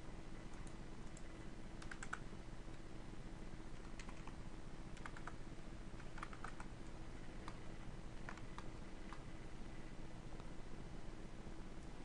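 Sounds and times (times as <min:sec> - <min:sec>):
faint steady hum: 0:00.0 - 0:12.0
computer keyboard keystrokes: 0:00.5 - 0:02.2, 0:03.7 - 0:04.4, 0:05.0 - 0:05.4, 0:06.0 - 0:06.7, 0:08.2 - 0:09.2.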